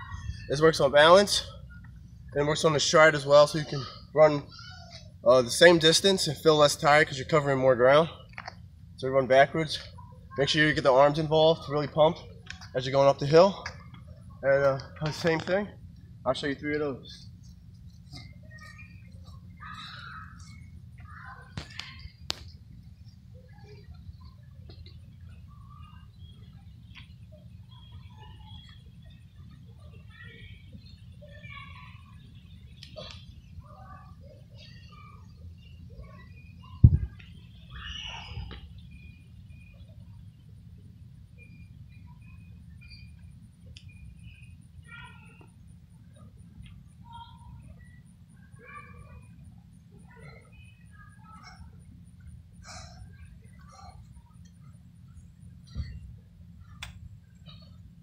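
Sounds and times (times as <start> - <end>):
birds chirping: 0.0 - 58.0
low steady rumble: 0.0 - 58.0.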